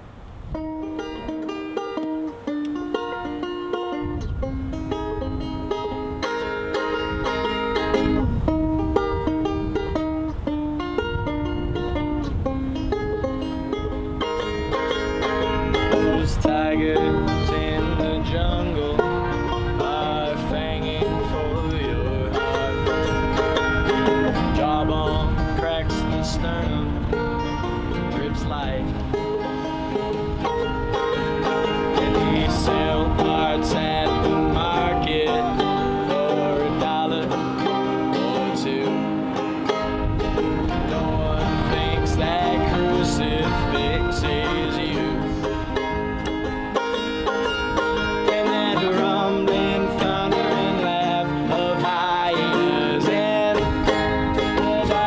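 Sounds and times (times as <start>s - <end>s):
acoustic guitar playing: 0.0s - 55.0s
banjo picking: 0.5s - 55.0s.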